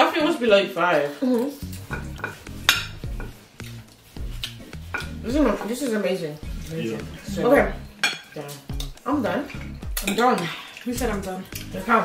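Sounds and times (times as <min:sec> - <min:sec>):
background music bass line: 0:01.6 - 0:10.3, 0:10.9 - 0:12.0
cutlery clinking on plates: 0:01.8 - 0:03.4, 0:04.9 - 0:05.8, 0:07.9 - 0:08.9.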